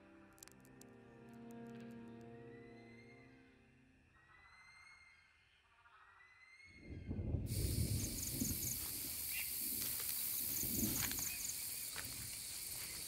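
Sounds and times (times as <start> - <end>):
insects hissing: 7.5 - 13.0.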